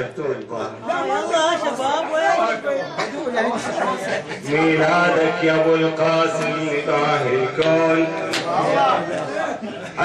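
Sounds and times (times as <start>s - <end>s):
religious chanting voices: 3.8s - 10.0s.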